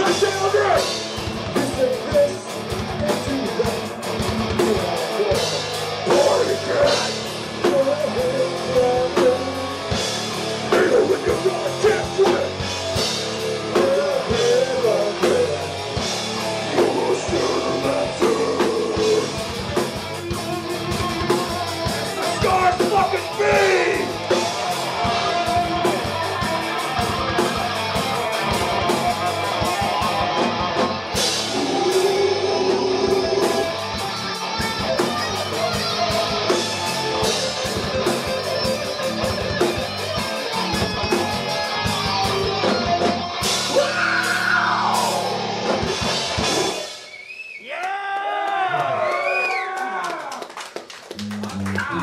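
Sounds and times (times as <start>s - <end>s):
distorted electric guitars: 0.0s - 47.2s
drum kit: 0.0s - 47.3s.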